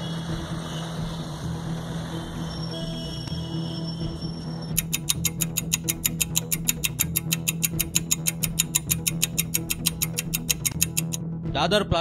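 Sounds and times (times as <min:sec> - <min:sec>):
background music: 0:00.0 - 0:12.0
clock ticking: 0:04.7 - 0:11.2.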